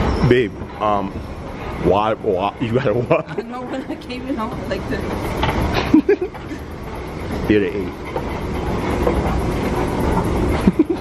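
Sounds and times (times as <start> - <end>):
escalator mechanical rumble: 0.0 - 11.0.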